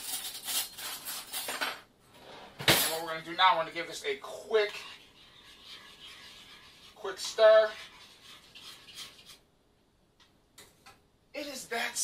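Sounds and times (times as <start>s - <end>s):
spoon stirring oatmeal in saucepan: 2.9s - 9.6s.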